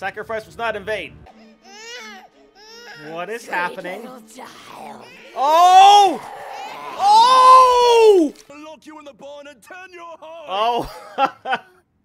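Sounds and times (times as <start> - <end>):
baby crying: 1.3 - 3.9, 4.5 - 8.4.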